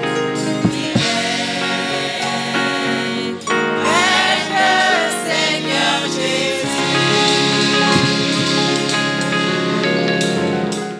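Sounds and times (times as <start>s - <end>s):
choir singing gospel: 0.0s - 10.0s.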